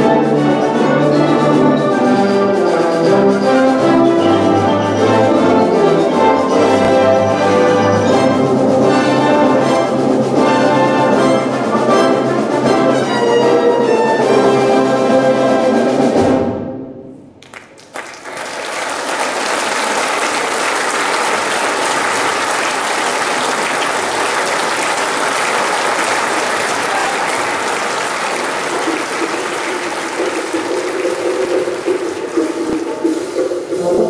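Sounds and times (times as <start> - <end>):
audience applause: 17.4 - 33.4.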